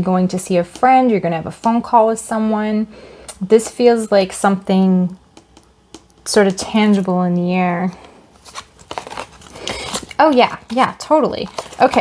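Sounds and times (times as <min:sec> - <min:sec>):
cards clicking and scraping: 0:08.4 - 0:10.8
card rustle: 0:08.4 - 0:12.0.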